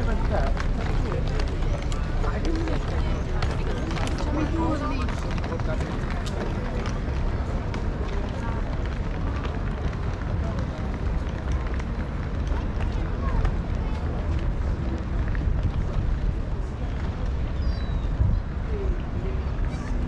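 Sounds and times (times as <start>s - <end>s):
footsteps on stone paving: 0.0s - 20.0s
low rumble on microphone: 0.0s - 20.0s
people talking indistinctly: 0.0s - 20.0s.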